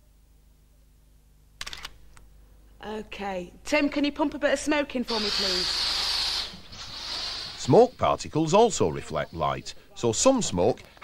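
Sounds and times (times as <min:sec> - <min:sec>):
faint low hum: 0:00.0 - 0:05.8
camera shutter click: 0:01.6 - 0:02.1.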